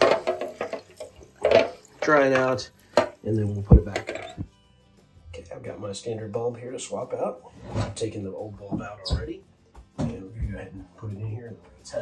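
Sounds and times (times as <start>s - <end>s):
tap water splashing on plastic: 0.0s - 4.1s.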